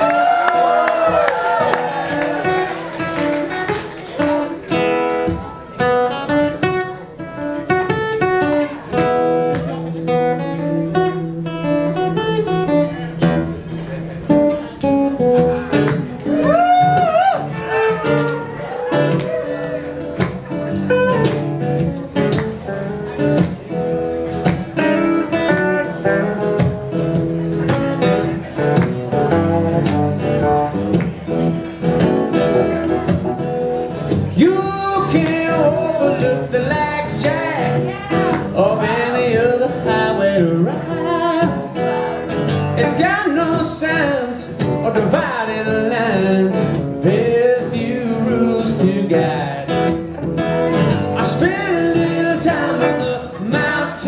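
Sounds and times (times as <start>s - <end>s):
acoustic guitar: 0.0s - 54.0s
electric guitar lead lines bending: 19.8s - 35.3s
person singing: 34.3s - 49.9s, 51.1s - 54.0s.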